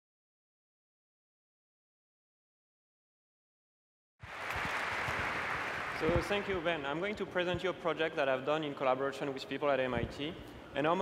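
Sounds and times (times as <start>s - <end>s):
audience applause: 4.2s - 6.8s.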